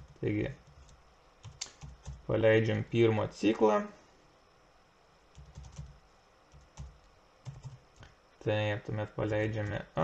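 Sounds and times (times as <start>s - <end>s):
computer keyboard typing: 0.0s - 2.3s, 5.3s - 7.8s, 9.4s - 9.8s.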